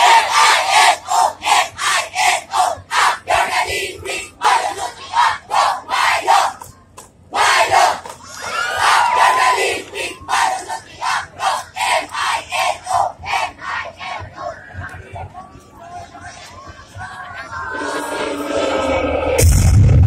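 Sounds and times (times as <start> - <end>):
squad shouting a chant in unison: 0.0 - 6.6.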